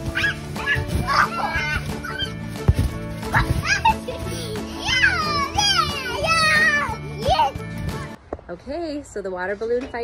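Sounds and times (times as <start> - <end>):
children squealing: 0.0 - 2.4
background music: 0.0 - 8.2.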